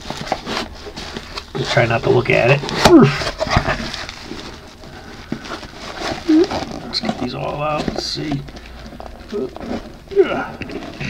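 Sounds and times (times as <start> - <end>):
packing rustling and scraping: 0.0 - 11.0.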